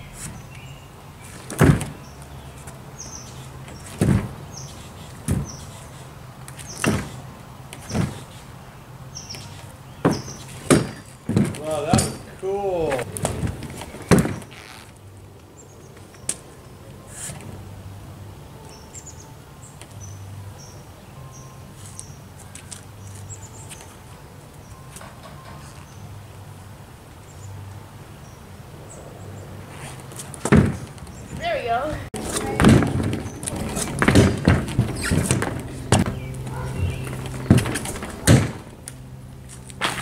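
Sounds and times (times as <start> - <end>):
scooter banging onto board ramp: 10.0 - 12.3, 13.2 - 14.5, 30.4 - 30.9, 32.2 - 38.8.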